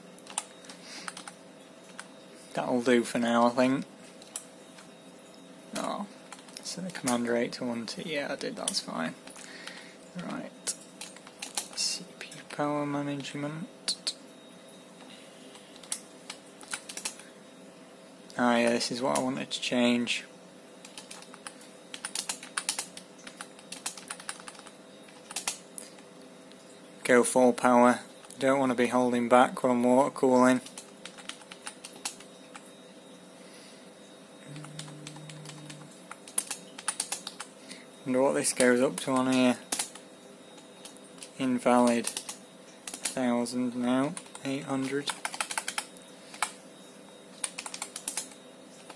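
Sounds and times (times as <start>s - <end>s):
faint steady hum: 0.0s - 48.9s
short low tone: 34.4s - 36.0s.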